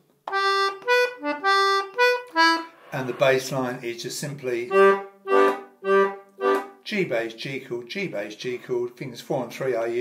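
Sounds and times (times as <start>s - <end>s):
melodeon oom-pah bass line: 4.7s - 6.6s.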